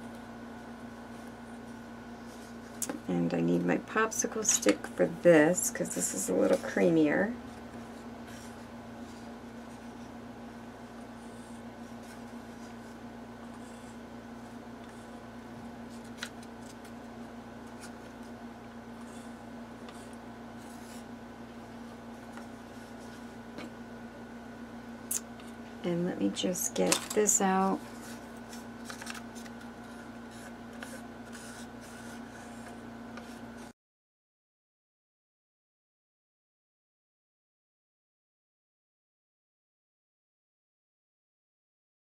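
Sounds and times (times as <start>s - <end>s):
steady low hum: 0.0s - 33.8s.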